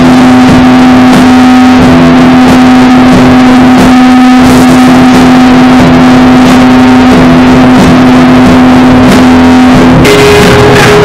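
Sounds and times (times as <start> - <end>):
loud distorted noise: 0.0 - 11.0
steady droning tone: 0.0 - 11.0.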